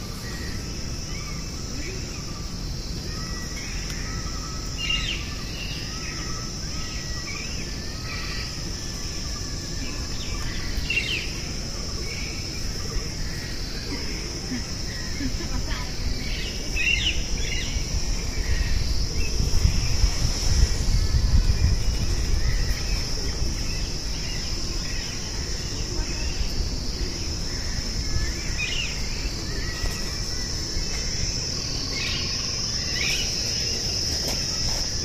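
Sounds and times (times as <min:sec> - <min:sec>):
insects droning: 0:00.0 - 0:35.0.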